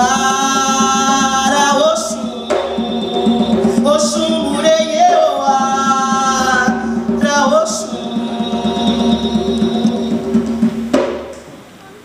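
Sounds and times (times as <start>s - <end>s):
hand drum beat: 0.0s - 11.5s
live band playing: 0.0s - 11.8s
sharp accented band hit: 8.0s - 11.5s.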